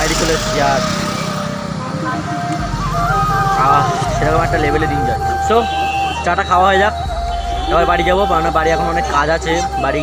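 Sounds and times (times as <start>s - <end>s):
background music: 0.0s - 10.0s
passing traffic rumble: 0.0s - 10.0s.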